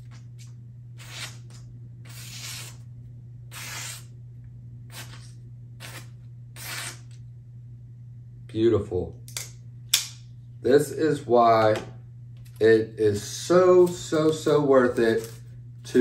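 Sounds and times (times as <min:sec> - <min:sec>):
knife slicing paper: 0:01.0 - 0:02.9, 0:03.5 - 0:04.1, 0:04.9 - 0:07.2.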